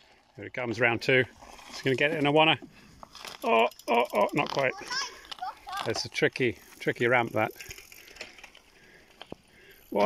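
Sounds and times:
bike freewheel ticking: 0:03.1 - 0:10.0.

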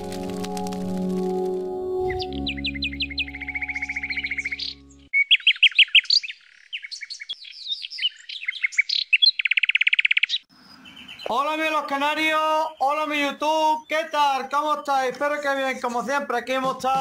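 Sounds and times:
held background music notes: 0:00.0 - 0:05.1
canary singing trills: 0:02.0 - 0:15.8.

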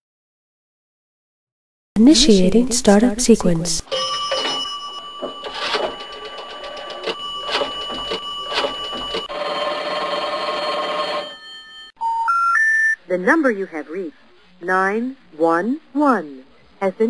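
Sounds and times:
steady telephone tone: 0:03.9 - 0:13.0.

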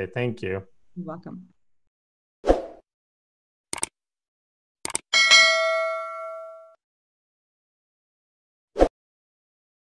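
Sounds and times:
bright bell ding: 0:05.2 - 0:06.8.

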